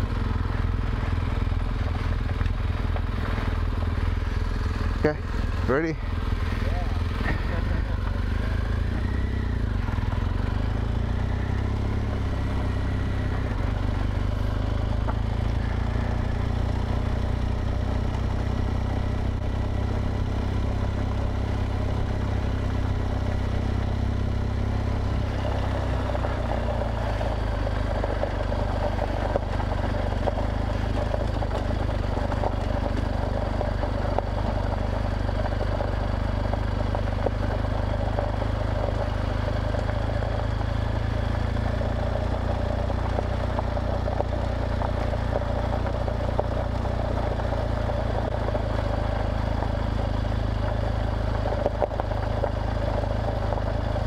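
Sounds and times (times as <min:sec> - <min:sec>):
motorcycle engine running: 0:00.0 - 0:54.0
tyres rolling over gravel: 0:00.0 - 0:54.0.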